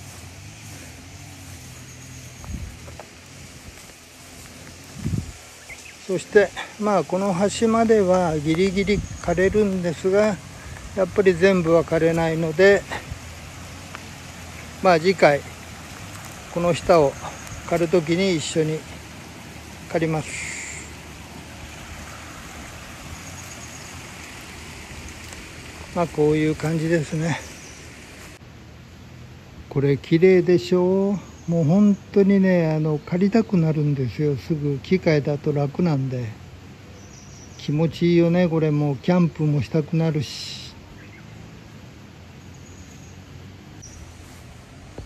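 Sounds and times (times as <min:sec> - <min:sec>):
creek running over stones: 0:00.0 - 0:28.4, 0:41.8 - 0:45.0.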